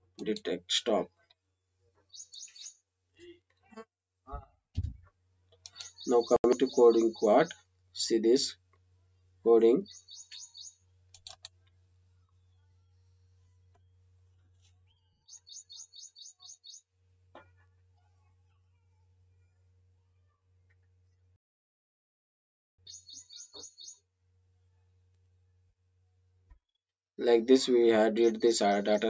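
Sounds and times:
bird chirping: 2.0 - 2.9, 5.6 - 8.4, 9.5 - 16.9, 22.8 - 24.1, 27.3 - 29.0.

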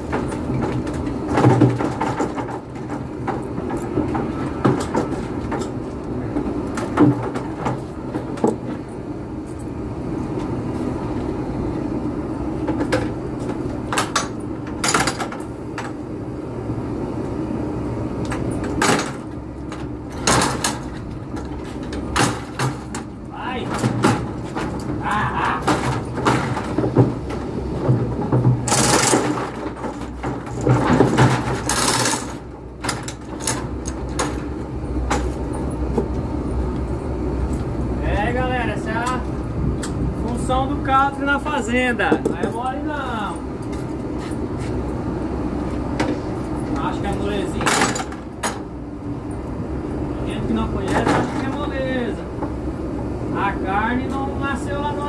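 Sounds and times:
gates and latches knocking: 0.0 - 8.8, 12.6 - 16.0, 18.3 - 36.2, 45.9 - 48.7
steady low hum: 0.0 - 55.0.

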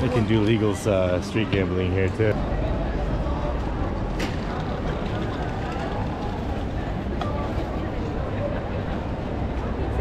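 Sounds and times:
chatter of passers-by: 0.0 - 10.0
low city rumble: 0.0 - 10.0.

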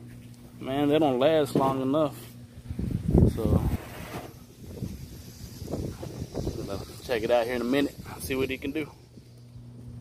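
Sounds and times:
wind rumble on microphone: 2.6 - 10.0.

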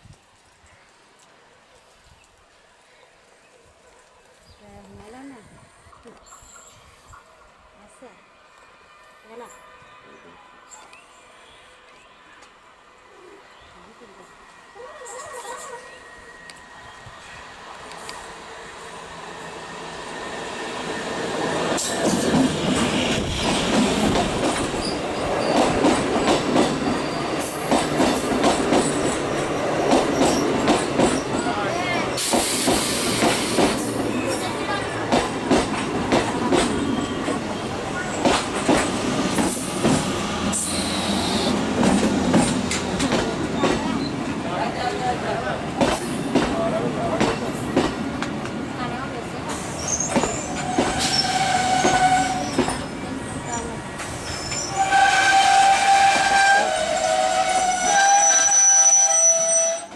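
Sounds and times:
train wheels clattering over rail joints: 21.8 - 31.4, 32.2 - 34.3, 34.9 - 37.4, 38.1 - 40.8, 41.7 - 44.1, 45.8 - 48.6
train horn: 50.6 - 52.7, 54.7 - 59.9.

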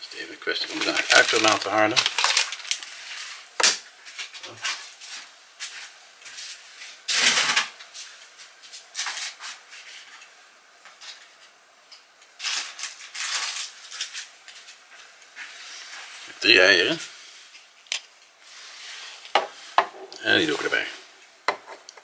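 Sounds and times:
bacon frying in a pan: 0.4 - 16.2.

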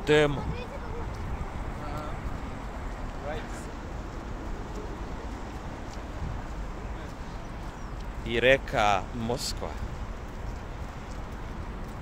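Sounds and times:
wind rumble on microphone: 0.0 - 8.3
city ambience: 0.0 - 12.0.

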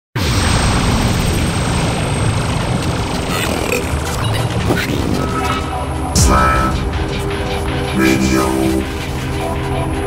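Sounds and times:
loud rushing noise with rumble: 0.2 - 10.0.

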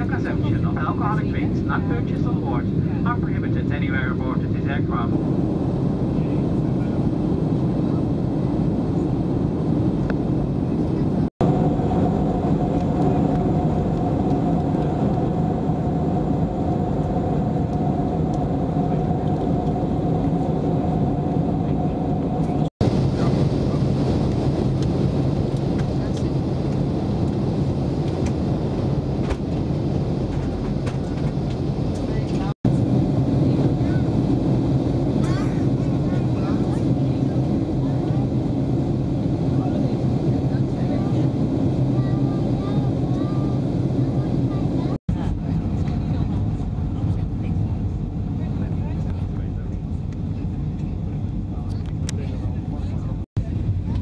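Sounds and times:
airplane cabin engine rumble: 0.0 - 54.0.

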